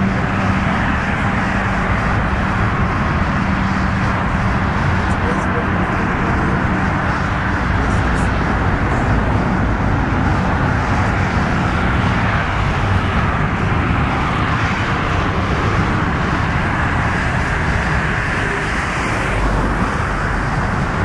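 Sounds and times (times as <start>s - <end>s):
freeway traffic noise: 0.0s - 21.0s.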